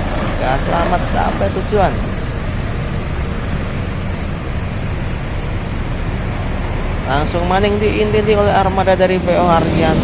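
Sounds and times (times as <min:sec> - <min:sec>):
bus diesel engine pulling away: 0:00.0 - 0:10.0
street noise hiss: 0:00.0 - 0:10.0.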